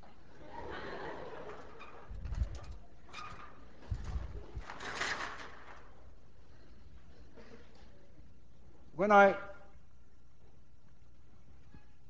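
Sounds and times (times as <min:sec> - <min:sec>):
rustling: 0:01.6 - 0:08.0.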